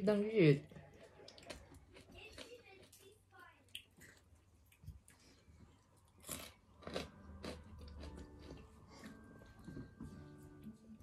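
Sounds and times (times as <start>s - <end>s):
chewing and crunching food: 0.6s - 11.0s.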